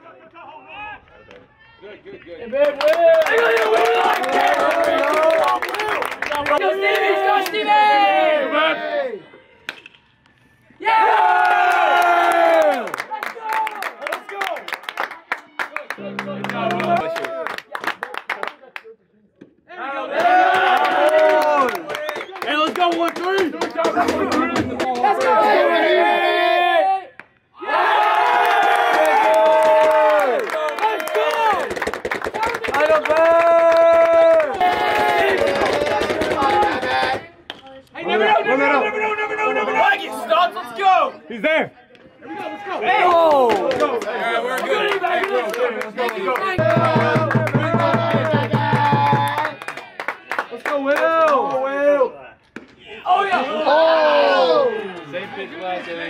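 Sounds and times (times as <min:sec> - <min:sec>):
people clapping: 0:02.5 - 0:07.7, 0:11.3 - 0:19.0, 0:20.1 - 0:25.6, 0:28.0 - 0:37.6, 0:43.0 - 0:51.6
crowd yelling and chanting: 0:16.0 - 0:17.6, 0:23.4 - 0:31.7, 0:32.8 - 0:37.4, 0:46.2 - 0:49.8, 0:52.8 - 0:56.0.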